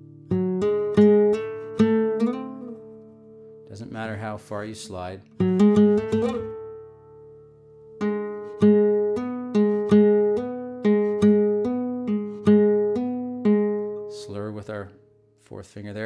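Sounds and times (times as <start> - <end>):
flamenco guitar playing slowly: 0.0 - 14.3.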